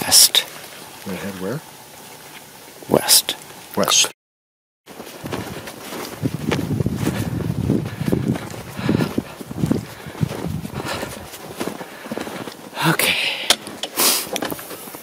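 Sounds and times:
footsteps crunching through snow: 4.9 - 13.0, 13.6 - 15.0.

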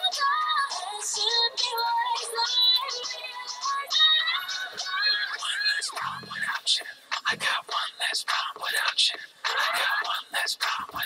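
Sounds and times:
whispered male vocal pop song: 0.0 - 11.0.

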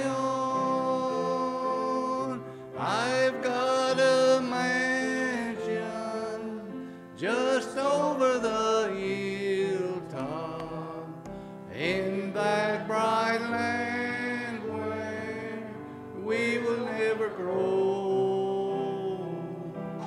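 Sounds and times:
man singing a hymn: 0.0 - 20.0
musical accompaniment: 0.0 - 20.0.

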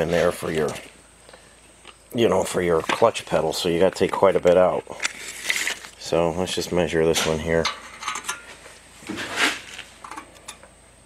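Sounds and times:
tape measure scraping metal: 5.0 - 6.0, 9.1 - 9.9.

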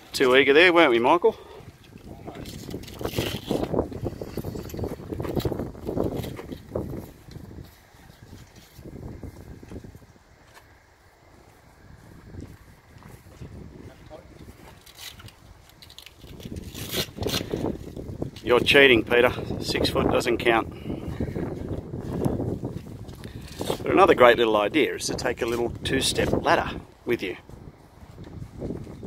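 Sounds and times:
canvas awning rustling: 0.0 - 19.8, 21.2 - 29.0.

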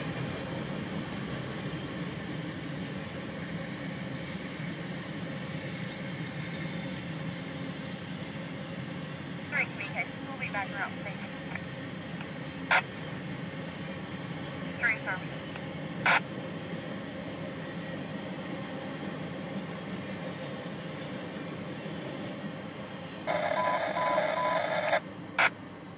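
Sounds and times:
repeated beep: 23.4 - 25.0.

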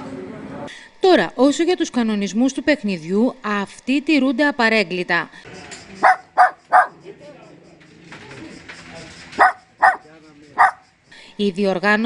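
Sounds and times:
puppy barking: 6.0 - 7.0, 9.4 - 10.8.

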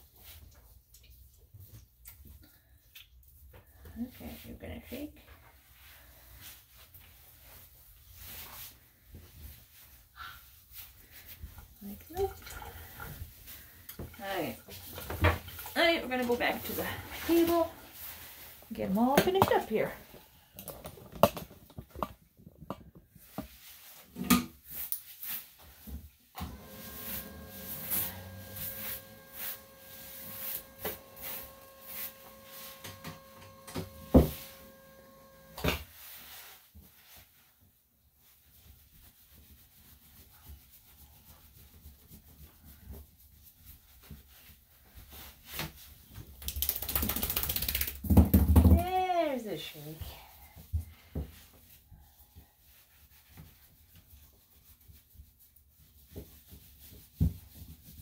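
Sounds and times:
electric dog clippers humming: 26.4 - 35.6.

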